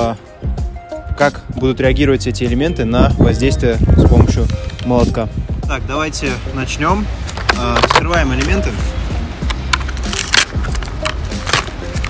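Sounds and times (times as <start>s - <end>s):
plastic packaging clicks and crackles: 7.2s - 8.6s, 9.5s - 12.0s.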